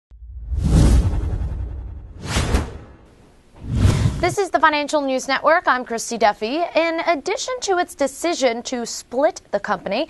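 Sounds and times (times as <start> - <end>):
deep rumble: 0.1 - 4.4
whoosh sound effect: 0.4 - 4.4.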